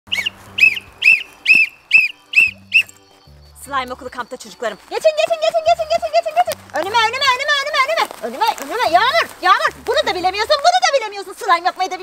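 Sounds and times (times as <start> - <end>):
short high chirps: 0.1 - 3.2.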